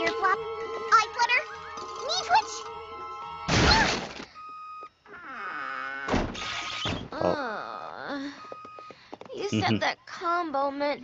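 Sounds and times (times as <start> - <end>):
short steady beep: 4.3 - 5.0.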